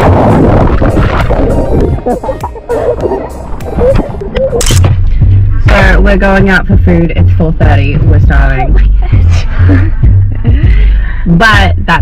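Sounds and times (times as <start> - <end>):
water splashing: 0.0 - 5.2
water rushing against microphone: 0.0 - 5.4.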